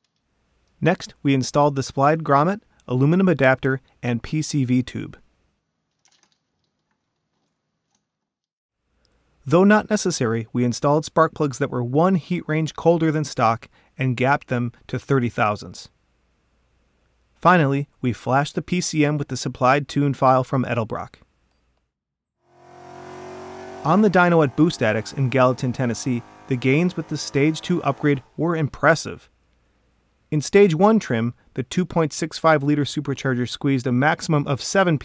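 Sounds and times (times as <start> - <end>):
supercharged car engine running: 22.5 - 28.5.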